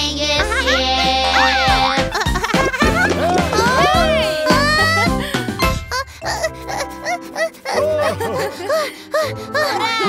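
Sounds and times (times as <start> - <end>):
children's background music: 0.0 - 10.0
cartoon kitten panting: 4.8 - 7.8.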